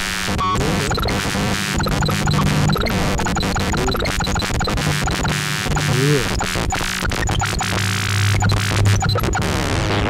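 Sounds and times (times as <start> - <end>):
rapid crackling clicks: 0.8 - 10.0.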